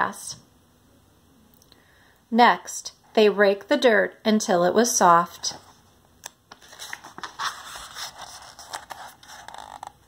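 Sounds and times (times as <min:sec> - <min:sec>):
book page turning: 0:05.4 - 0:10.0.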